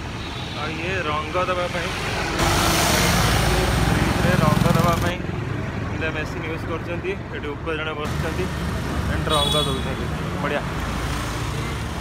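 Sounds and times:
street traffic rumble: 0.0 - 12.0.

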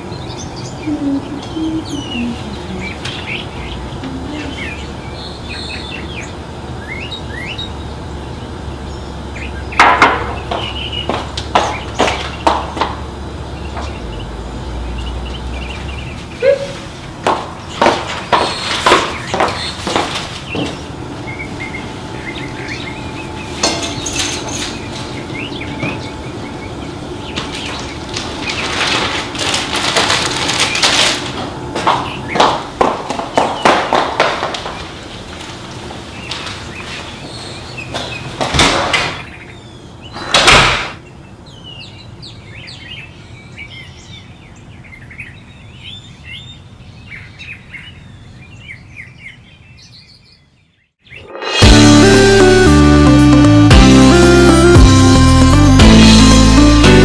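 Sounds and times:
faint bird chirps: 0.5 - 5.8.

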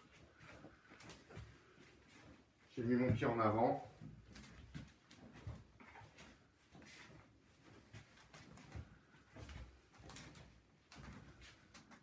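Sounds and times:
footsteps on wooden floor: 0.0 - 12.0
soft thuds on wooden floor: 3.0 - 5.8.

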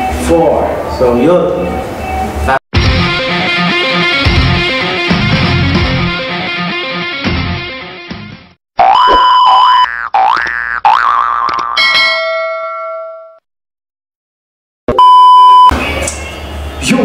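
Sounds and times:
music: 2.8 - 8.6
loud steady beep: 15.0 - 15.8.

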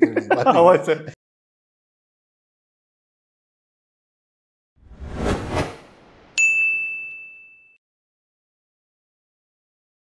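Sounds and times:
quick whooshes: 4.8 - 6.2
bright ringing ding: 6.4 - 7.8.

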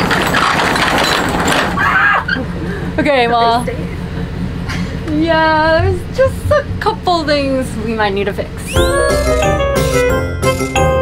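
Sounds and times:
roll-up door rattling open: 0.0 - 2.3.

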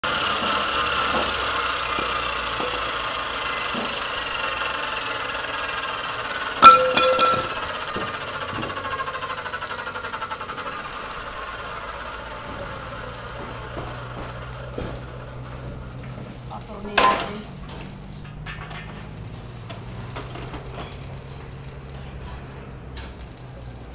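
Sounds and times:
cut-off saw winding down: 0.0 - 18.1
sharp metallic clank: 6.5 - 8.2.

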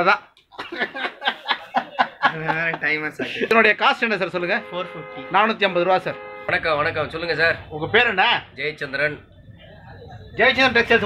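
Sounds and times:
man chuckling: 0.5 - 3.5.

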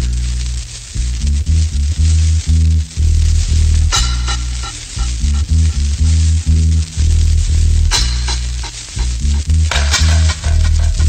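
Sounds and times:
heavy dub bass line: 0.0 - 11.0
vinyl crackle and hiss: 0.0 - 11.0
sharp drum hit: 9.7 - 11.0.

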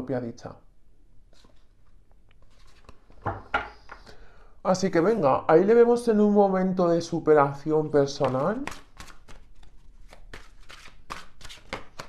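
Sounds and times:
cards being shuffled: 1.3 - 3.2, 8.1 - 12.0.

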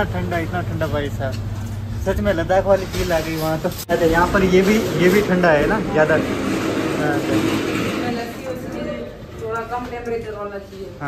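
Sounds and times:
evaporator fans whirring: 0.0 - 11.0.

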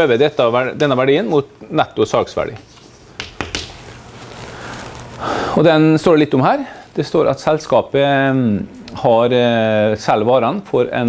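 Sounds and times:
room hiss: 0.0 - 11.0
chalk clicking on blackboard: 2.6 - 3.8.

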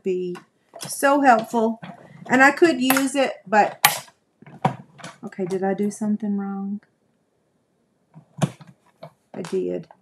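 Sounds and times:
sharp plastic clack: 2.8 - 5.6.

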